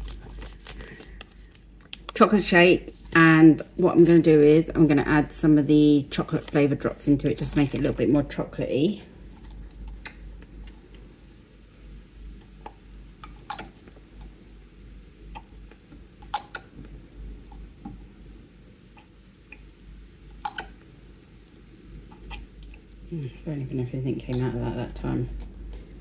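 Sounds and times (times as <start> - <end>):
faint low hum: 0.0 - 26.0.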